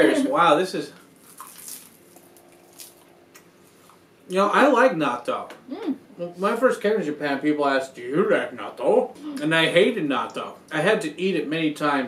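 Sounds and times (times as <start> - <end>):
people chewing: 1.0 - 4.0.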